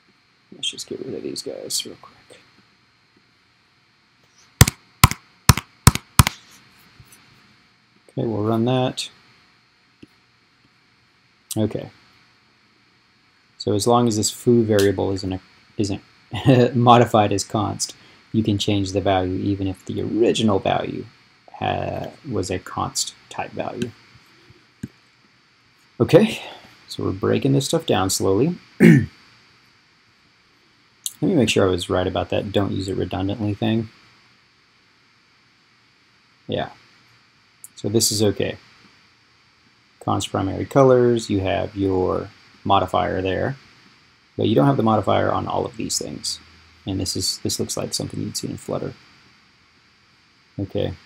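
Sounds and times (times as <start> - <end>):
laptop keystroke clicks: 4.6 - 6.4
throat clearing: 28.8 - 29.1.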